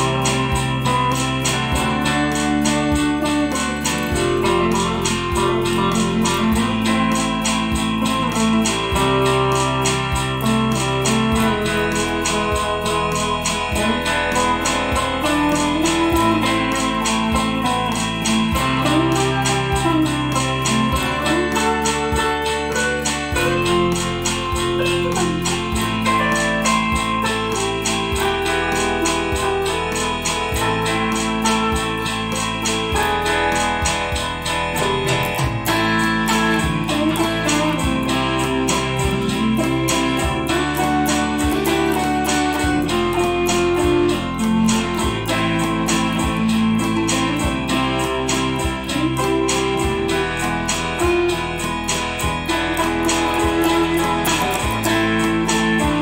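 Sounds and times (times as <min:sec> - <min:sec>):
backing track bass drums keyboard: 0:00.0 - 0:56.0
electric guitar lead melody: 0:00.0 - 0:56.0.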